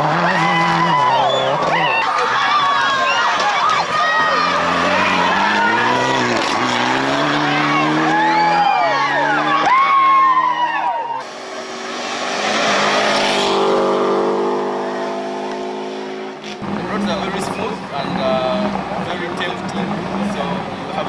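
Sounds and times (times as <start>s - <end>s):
rally car engine revving: 0.0s - 2.0s, 3.9s - 10.4s, 11.2s - 21.0s.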